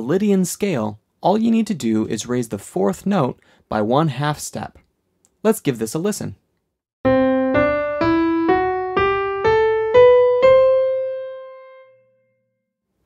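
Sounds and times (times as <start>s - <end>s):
piano playing ascending scale: 7.0s - 12.6s.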